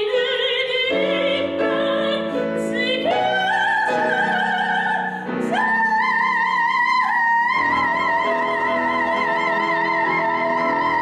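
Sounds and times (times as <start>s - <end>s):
operatic soprano singing: 0.0s - 11.0s
piano accompaniment: 0.0s - 11.0s.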